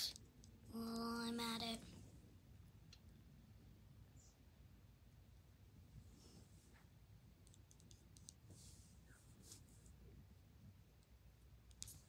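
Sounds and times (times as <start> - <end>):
soft rubbing: 8.0 - 10.1.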